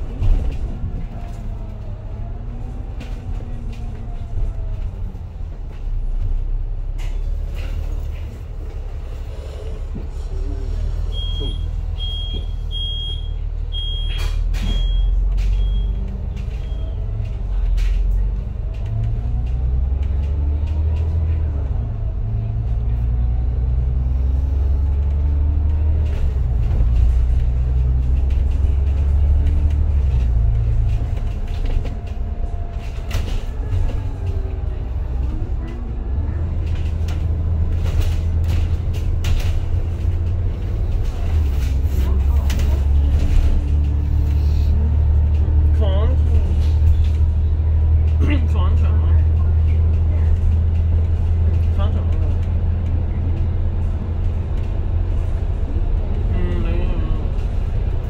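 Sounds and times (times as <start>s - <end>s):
bus engine pulling away: 0.0s - 58.0s.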